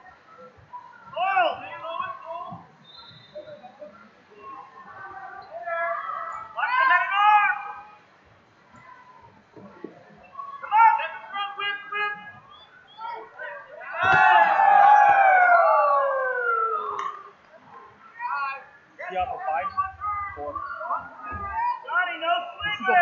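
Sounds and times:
people yelling: 0:13.1 - 0:17.3.

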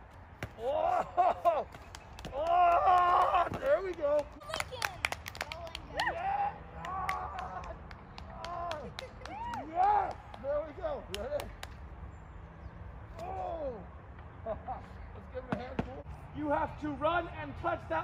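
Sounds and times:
children clapping: 0:01.9 - 0:06.1, 0:06.8 - 0:10.5.

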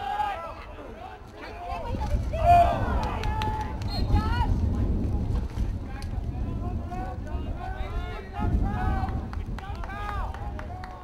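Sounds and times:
players shouting: 0:00.0 - 0:04.7, 0:06.5 - 0:11.0
wind rumble on microphone: 0:01.5 - 0:11.0.

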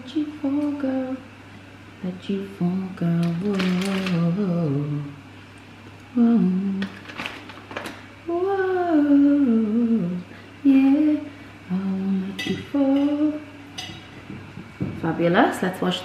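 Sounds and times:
woman humming a tune: 0:06.1 - 0:06.9, 0:08.3 - 0:13.5.

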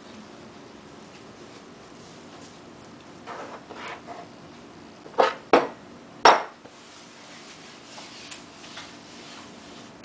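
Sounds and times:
dough knocking on counter: 0:05.2 - 0:06.6.

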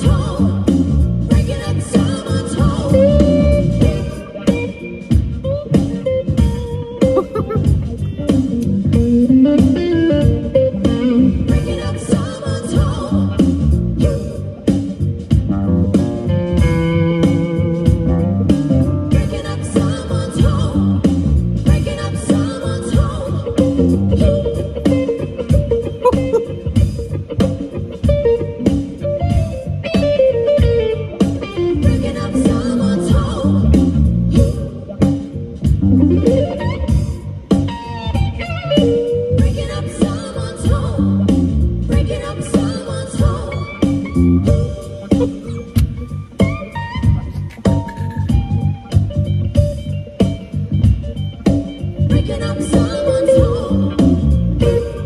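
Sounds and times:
bass guitar: 0:00.0 - 0:55.0
drums: 0:00.0 - 0:55.0
electric guitar lead notes: 0:02.6 - 0:11.8, 0:13.2 - 0:19.3, 0:23.4 - 0:39.5, 0:43.3 - 0:55.0.

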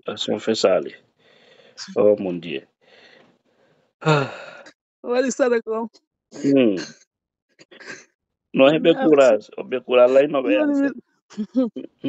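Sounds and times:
person speaking: 0:00.0 - 0:00.9, 0:01.8 - 0:02.6, 0:04.0 - 0:04.5, 0:05.1 - 0:05.8, 0:06.4 - 0:06.9, 0:08.6 - 0:12.0
person sighing: 0:04.0 - 0:04.6, 0:06.4 - 0:06.8, 0:08.8 - 0:09.3.

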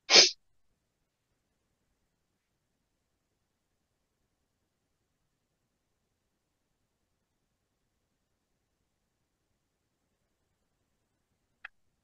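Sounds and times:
sharp burst of breath: 0:00.0 - 0:00.3.

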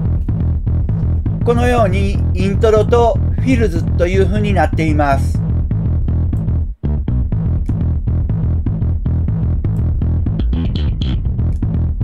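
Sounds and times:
slap bass notes: 0:00.0 - 0:12.0.

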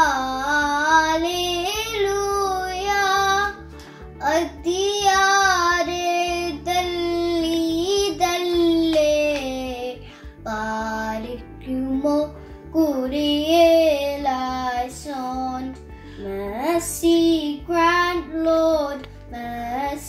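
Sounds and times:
girl singing a hymn: 0:00.0 - 0:20.0
breath: 0:03.8 - 0:04.2, 0:10.0 - 0:10.4, 0:12.4 - 0:12.7, 0:15.9 - 0:16.3.

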